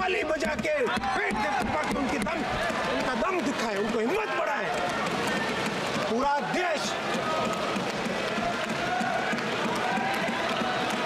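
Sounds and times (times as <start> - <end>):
hands thumping desks: 0.0 - 6.2.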